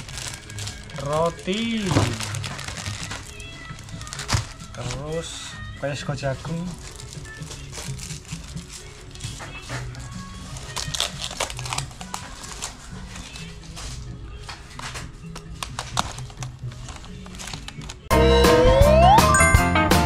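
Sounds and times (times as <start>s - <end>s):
plastic packaging crinkling: 0.0s - 18.1s
background music with bass line: 18.1s - 20.0s.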